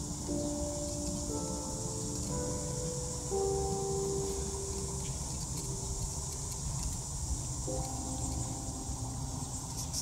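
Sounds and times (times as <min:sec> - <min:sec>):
insect chorus drone: 0:00.0 - 0:10.0.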